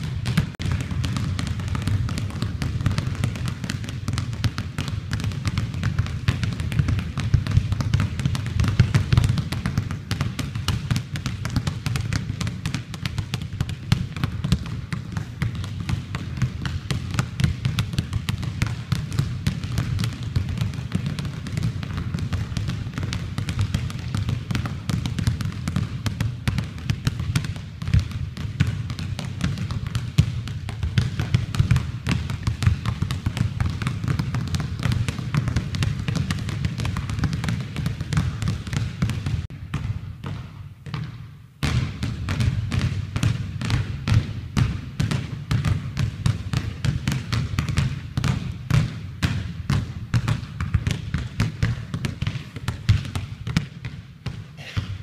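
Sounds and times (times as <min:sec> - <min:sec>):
basketballs bouncing on wood floor: 0:00.0 - 0:55.0.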